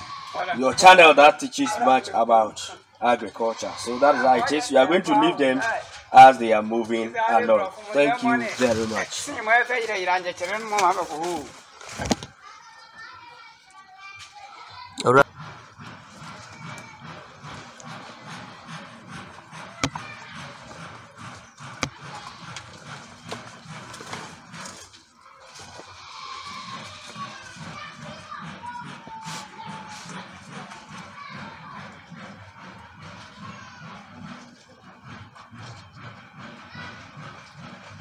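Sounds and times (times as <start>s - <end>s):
outdoor ambience: 0.0s - 38.0s.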